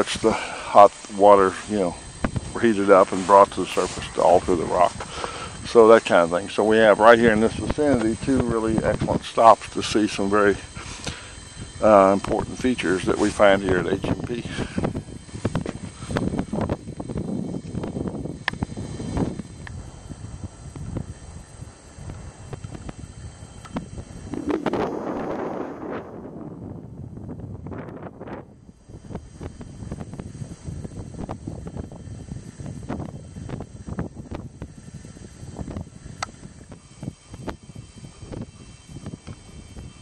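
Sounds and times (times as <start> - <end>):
wind buffeting microphone: 0.0 - 40.0.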